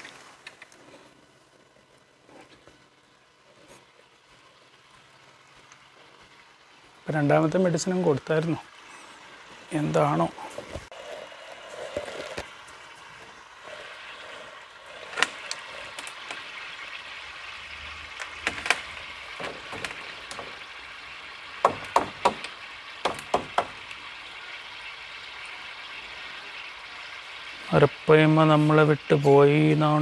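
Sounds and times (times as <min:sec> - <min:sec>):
sharp knocks and clicks: 0:18.3 - 0:20.6, 0:21.6 - 0:23.8.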